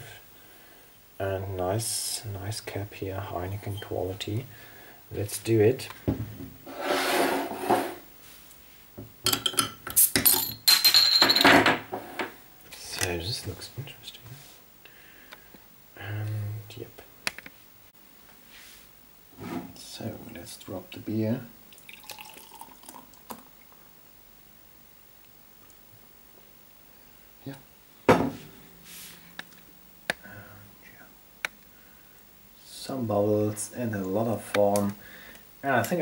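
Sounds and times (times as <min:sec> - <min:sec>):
metal and glass clinking: 0:09.2 - 0:11.8
beer pouring into a glass: 0:21.7 - 0:23.8.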